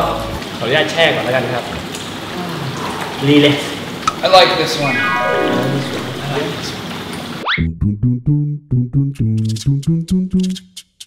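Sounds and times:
water running: 0.0 - 7.4
descending pitch sound effect: 4.1 - 6.8, 7.4 - 10.1
rising whoosh: 4.1 - 6.8
man speaking: 4.2 - 6.8.

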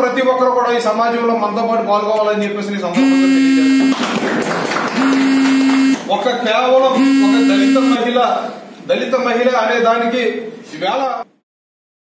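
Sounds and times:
people clapping: 3.7 - 6.3.

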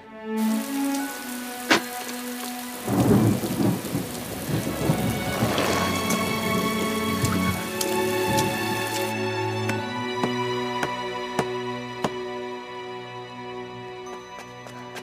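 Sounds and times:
soft background music: 0.0 - 15.0
heavy rain falling: 0.3 - 9.9
thunder crack and rumble: 2.8 - 7.6.

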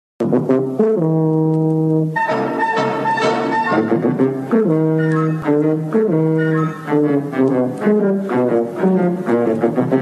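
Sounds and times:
low brass theme music: 0.2 - 10.0.

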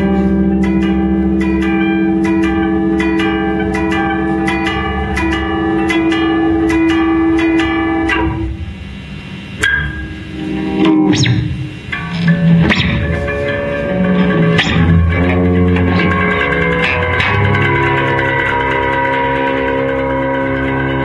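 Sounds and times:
electric guitars droning chord: 0.0 - 21.0
rapid guitar strokes: 0.0 - 21.0
sharp struck guitar notes: 0.0 - 21.0.

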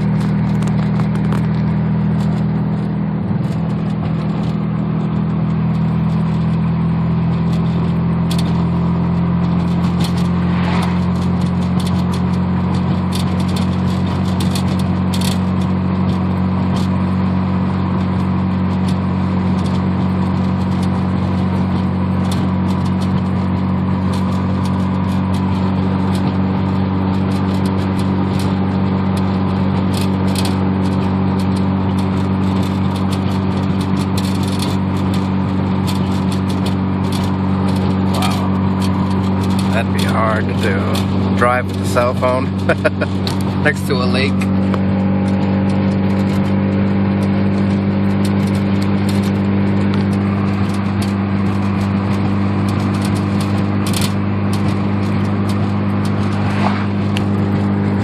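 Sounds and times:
rotary engine droning: 0.0 - 58.0.

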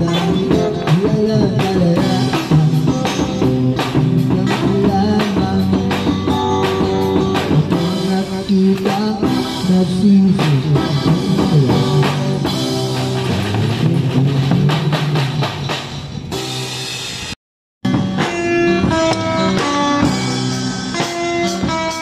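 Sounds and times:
electric guitar melody: 0.0 - 15.2, 17.9 - 22.0
drum kit beat: 0.0 - 22.0.

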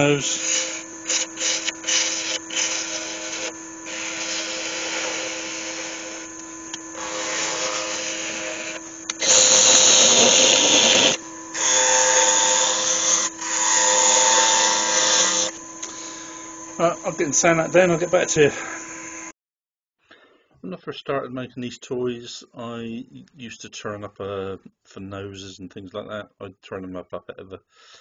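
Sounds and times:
lathe motor hum: 0.0 - 19.3
turning tool cutting wood: 0.0 - 19.3.

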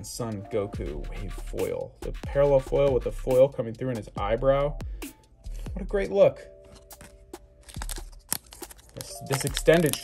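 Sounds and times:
faint background music: 0.0 - 10.0
foil wrapper crinkling: 6.9 - 10.0.

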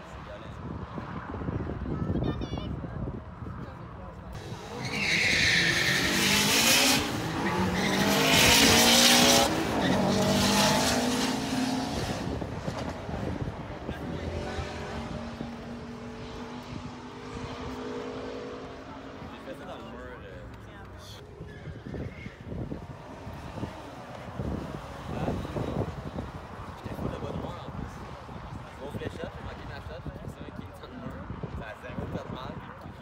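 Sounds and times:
drag car engines revving: 4.4 - 29.7
tyre squeal: 4.6 - 9.0, 21.4 - 22.6.

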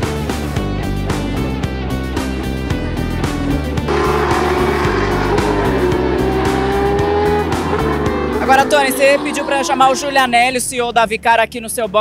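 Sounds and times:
background music with a beat: 0.0 - 8.4
racing car engine running: 2.2 - 10.3.

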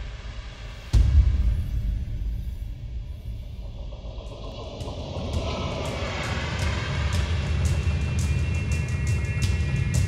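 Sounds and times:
cinematic intro music: 0.0 - 10.0.

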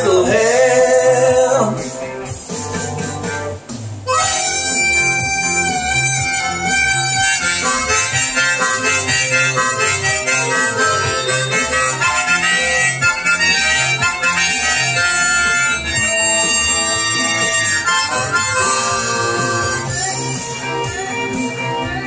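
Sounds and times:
rock band accompaniment: 0.0 - 22.0
harmonica solo: 4.0 - 22.0.

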